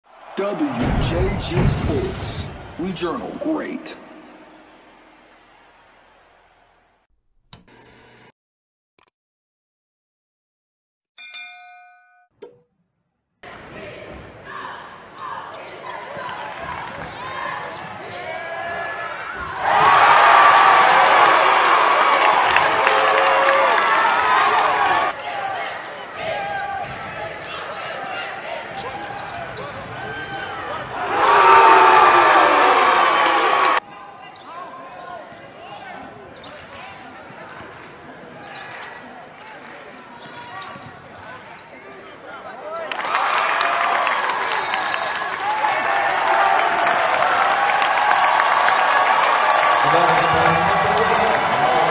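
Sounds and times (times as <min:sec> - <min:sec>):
crowd cheering: 0:00.0 - 0:07.1, 0:13.5 - 0:34.5, 0:42.6 - 0:51.9
sneakers squeaking on court: 0:15.2 - 0:16.3, 0:16.9 - 0:19.6, 0:34.2 - 0:42.4.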